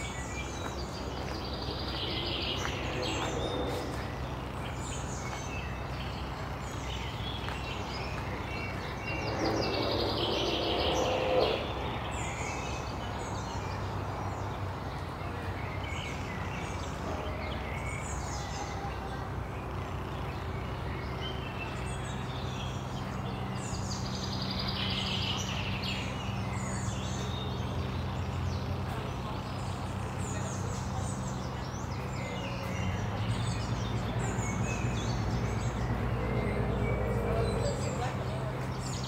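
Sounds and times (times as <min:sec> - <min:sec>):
songbirds chirping: 0:00.0 - 0:39.0
mid-pitched passing sound: 0:08.9 - 0:12.1.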